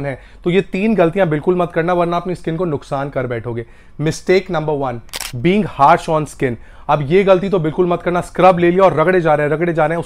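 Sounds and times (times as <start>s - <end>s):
camera shutter sound effect: 5.1s - 5.4s.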